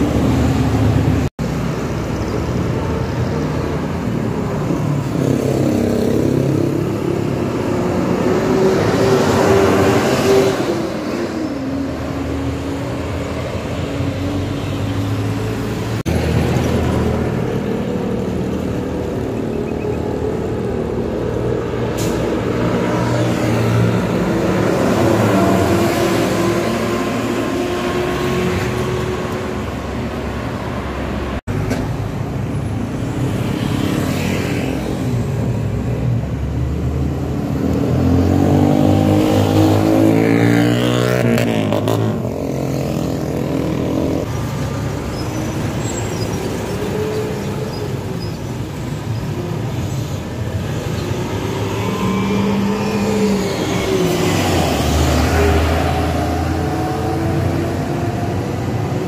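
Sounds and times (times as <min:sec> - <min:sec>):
heavy road traffic: 0:00.0 - 0:59.0
vehicle passing by: 0:50.2 - 0:59.0.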